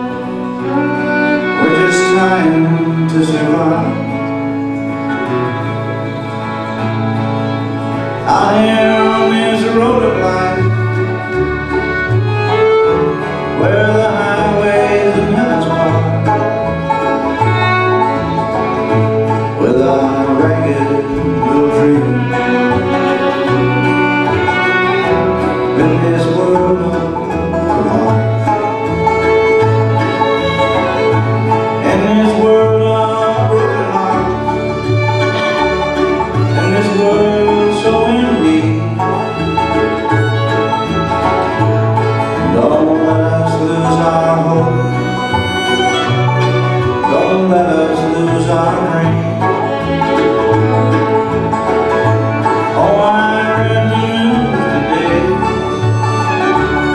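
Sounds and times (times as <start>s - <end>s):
bass notes: 0.0s - 56.9s
fiddle melody: 0.0s - 56.9s
strummed acoustic guitar: 0.0s - 56.9s.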